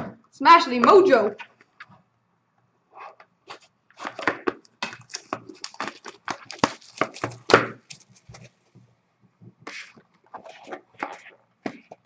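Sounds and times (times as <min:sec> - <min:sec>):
plastic wrap crinkling: 0:03.5 - 0:08.7.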